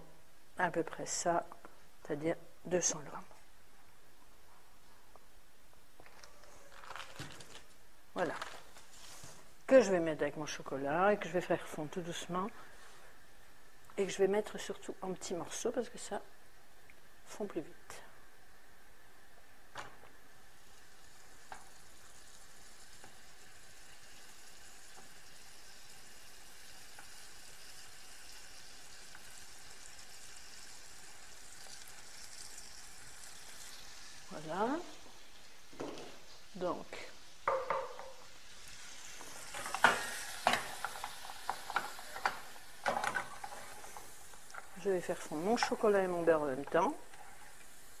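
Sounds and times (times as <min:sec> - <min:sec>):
faint steady hiss: 0:00.0 - 0:48.0
utensils knocking on a metal saucepan: 0:37.4 - 0:38.2.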